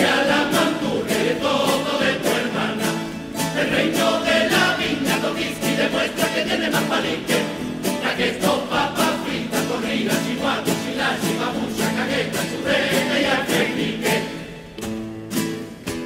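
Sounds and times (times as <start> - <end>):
choir singing: 0.0 - 14.8
guitars and lutes strumming: 0.0 - 16.0.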